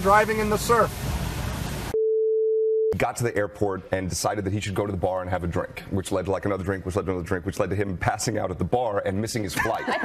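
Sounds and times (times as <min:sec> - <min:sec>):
water spray and road noise: 0:00.0 - 0:02.0.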